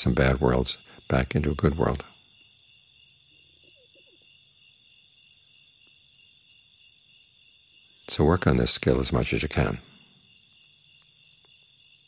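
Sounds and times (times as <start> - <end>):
crickets trilling: 0.0 - 12.0.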